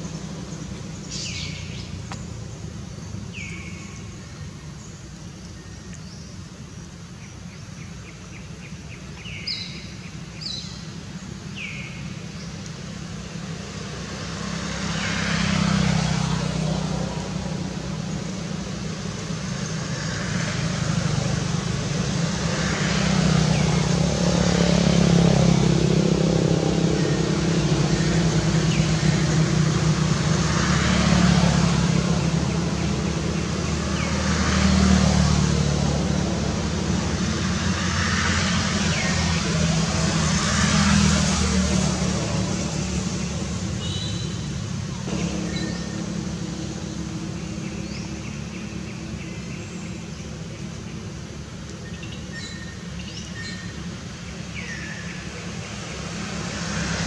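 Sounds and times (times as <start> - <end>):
vehicles passing: 0.0 - 57.0
bird chirps: 43.8 - 44.5.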